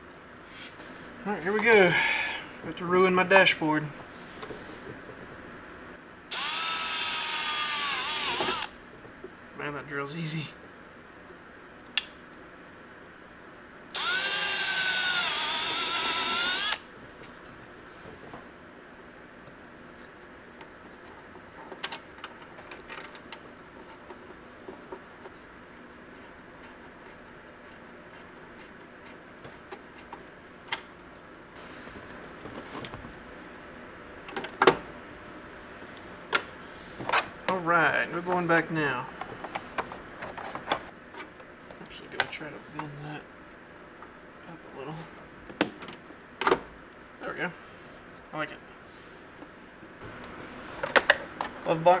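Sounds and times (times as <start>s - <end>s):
cordless drill whining: 6.3s - 8.8s, 14.0s - 16.8s.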